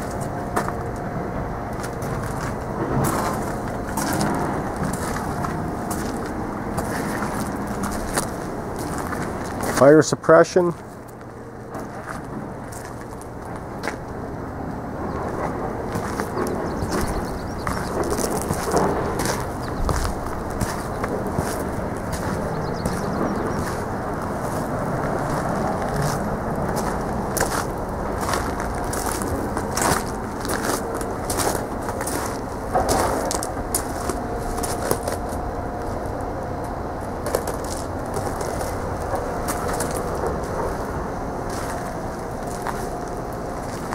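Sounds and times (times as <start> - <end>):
footsteps crunching on gravel: 1.8 - 14.2, 15.1 - 36.2, 37.2 - 43.9
low rumble: 11.1 - 43.9.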